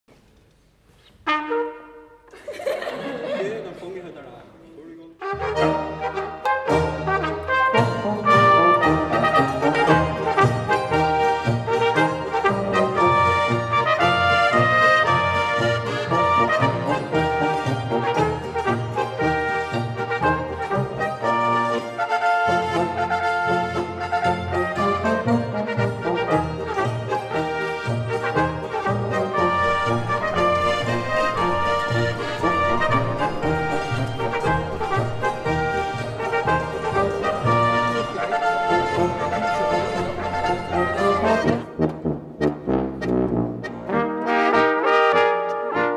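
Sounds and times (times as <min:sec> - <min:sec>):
brass folk music: 0:01.0 - 0:02.3, 0:04.8 - 0:45.9.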